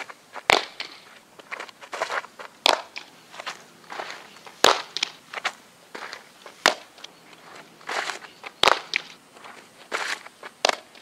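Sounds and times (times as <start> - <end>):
cleats scuffing on dirt: 0.0 - 11.0
ball smacking into leather mitt: 0.4 - 1.0, 2.6 - 3.1, 4.6 - 5.2, 6.6 - 7.0, 8.6 - 9.1.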